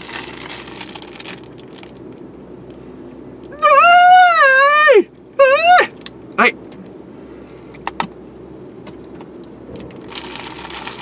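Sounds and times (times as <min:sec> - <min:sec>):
man's high-pitched squeal: 0:03.6 - 0:05.9
man speaking: 0:06.4 - 0:06.6.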